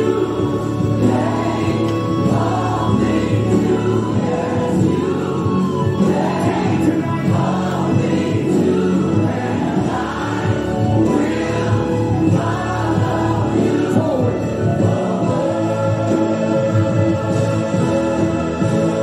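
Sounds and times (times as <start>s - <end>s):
choir singing gospel: 0.0s - 19.0s
instrumental backing: 0.0s - 19.0s.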